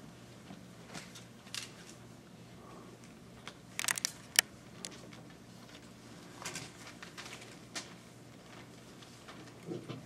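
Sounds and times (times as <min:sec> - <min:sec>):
faint clicks and rustles: 0:03.4 - 0:09.5.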